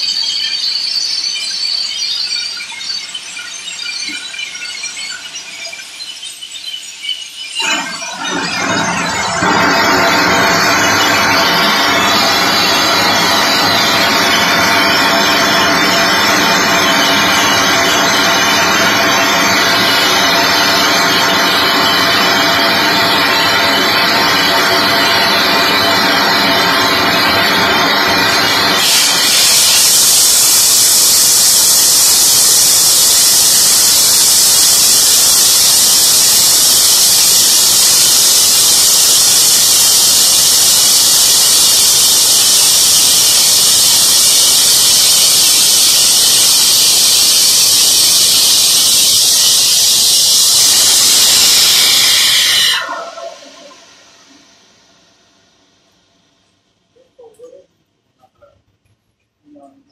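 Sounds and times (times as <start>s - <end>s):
steam blasting from valve: 7.6s - 56.0s.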